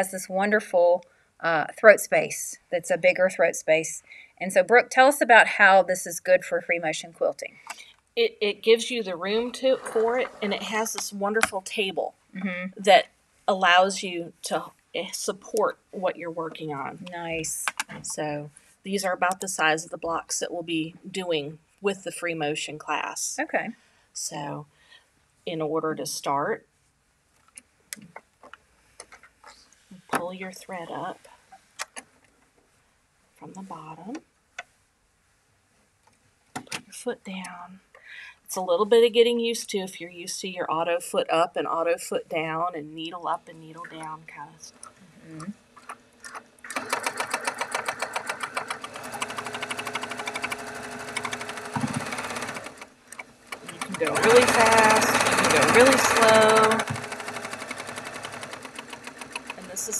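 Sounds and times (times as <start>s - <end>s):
sewing machine clicks: 45.8s - 59.6s.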